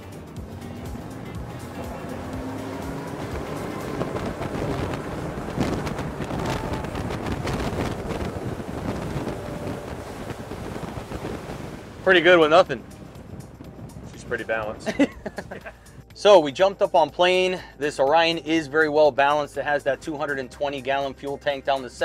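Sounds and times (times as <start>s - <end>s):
water rushing past: 0.0s - 15.0s
wind on microphone: 0.0s - 16.1s
outboard engines throttling up: 0.0s - 18.6s
background music: 0.0s - 22.0s.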